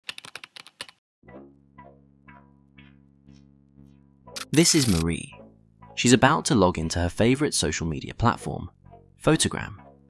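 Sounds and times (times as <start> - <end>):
computer keyboard keystrokes: 0.0 - 1.0
background music with low tones: 1.2 - 10.0.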